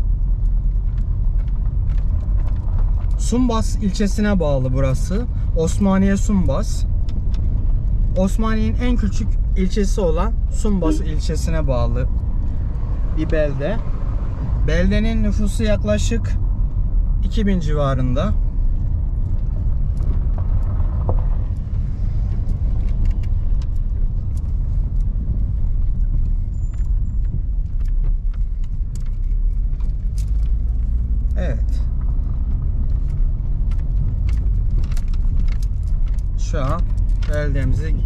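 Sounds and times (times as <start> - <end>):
car rumbling over gravel road: 0.0 - 38.0
gravel clicks and rattles: 0.0 - 38.0.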